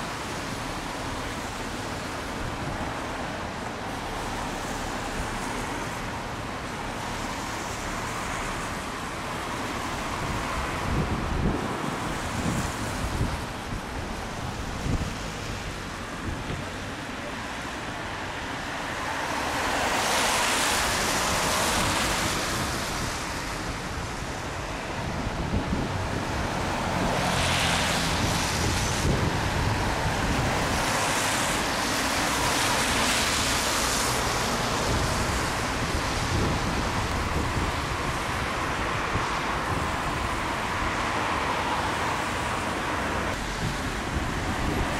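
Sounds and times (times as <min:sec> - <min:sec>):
cars driving past: 0:00.0 - 0:44.9
road traffic rumble: 0:00.0 - 0:44.9.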